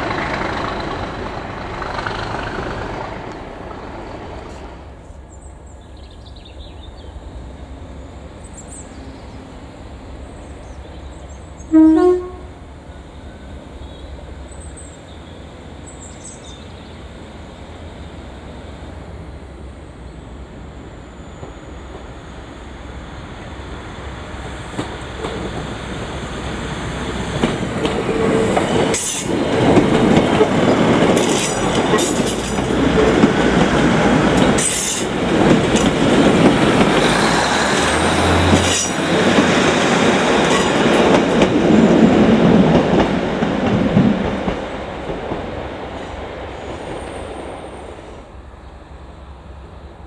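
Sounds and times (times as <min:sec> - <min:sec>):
train wheels on rails: 0:00.0 - 0:11.8, 0:12.6 - 0:50.0
diesel train engines: 0:00.0 - 0:50.0.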